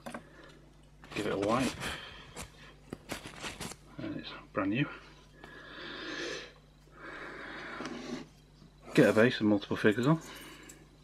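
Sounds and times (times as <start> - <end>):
paper towel rustling: 1.1 - 3.8.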